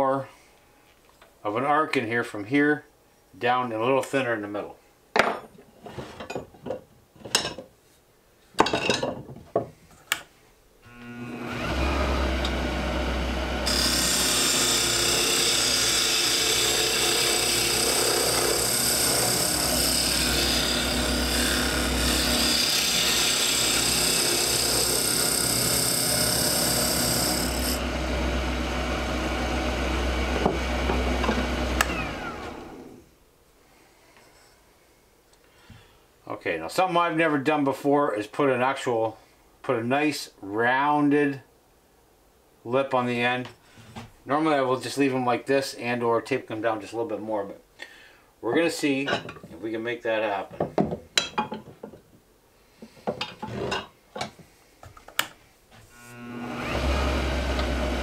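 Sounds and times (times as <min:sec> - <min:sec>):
knocks and clunks on tool rest: 0:05.2 - 0:07.7, 0:08.6 - 0:09.8, 0:30.4 - 0:31.4, 0:50.5 - 0:52.1, 0:53.0 - 0:55.2
lathe humming: 0:10.9 - 0:32.9, 0:55.9 - 0:58.0.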